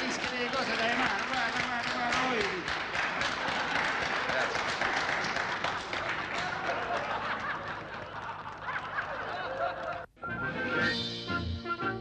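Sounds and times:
people clapping: 0:00.0 - 0:10.1.

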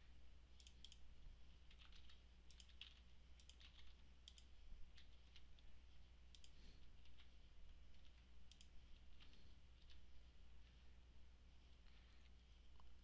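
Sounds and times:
keyboard and mouse clicks: 0:00.6 - 0:01.0, 0:01.7 - 0:05.6, 0:06.3 - 0:07.3, 0:07.9 - 0:10.0.

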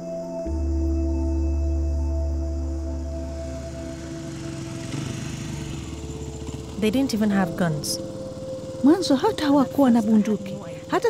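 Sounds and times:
low musical drone: 0:00.0 - 0:11.0
motorcycle engine running: 0:02.5 - 0:11.0.

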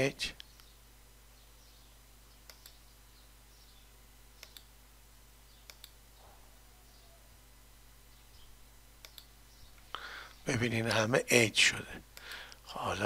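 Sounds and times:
computer mouse clicks: 0:00.4 - 0:00.8, 0:02.3 - 0:02.9, 0:04.4 - 0:04.7, 0:05.6 - 0:06.0, 0:09.0 - 0:09.3.

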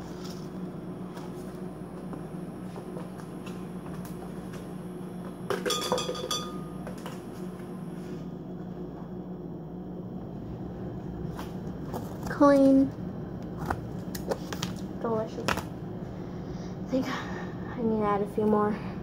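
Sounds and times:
low kitchen hum: 0:00.0 - 0:19.0
clinks against glass blender jar: 0:05.5 - 0:06.7.

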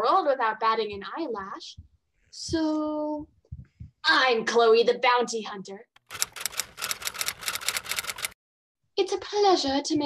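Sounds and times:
typewriter key clacks: 0:06.0 - 0:08.4.

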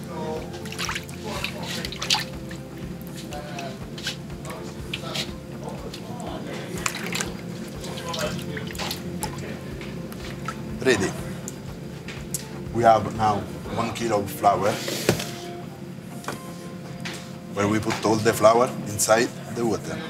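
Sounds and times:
hand splashing water in metal bowl: 0:00.6 - 0:02.4, 0:06.8 - 0:11.6.

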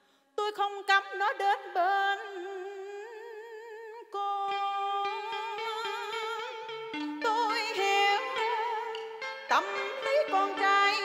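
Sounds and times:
plucked string notes: 0:04.5 - 0:11.0
instrumental accompaniment: 0:04.8 - 0:11.0.

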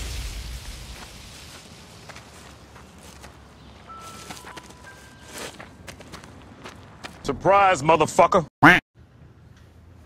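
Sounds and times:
footsteps in dry leaves: 0:00.0 - 0:07.2.

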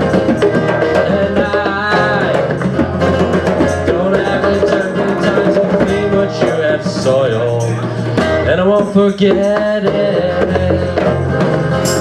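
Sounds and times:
light percussion: 0:00.0 - 0:12.0
strummed acoustic guitar: 0:00.0 - 0:12.0
man singing into microphone: 0:00.7 - 0:02.8, 0:03.5 - 0:11.6.

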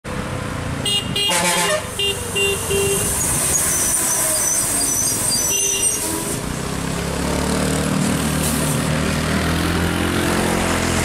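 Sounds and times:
traffic engines running: 0:00.0 - 0:11.0
short horn beeps: 0:00.9 - 0:03.2
long rich horn honk: 0:01.2 - 0:03.1.

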